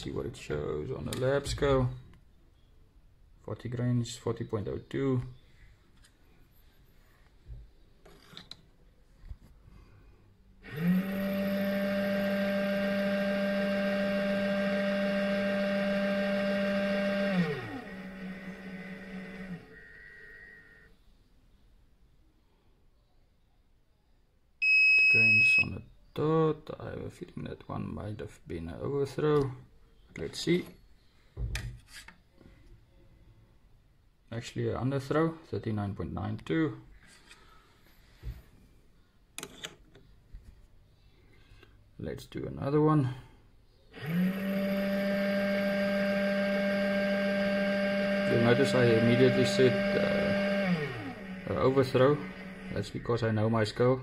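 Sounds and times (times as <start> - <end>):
powder dispenser motor humming: 10.6 - 20.9, 44.0 - 53.5.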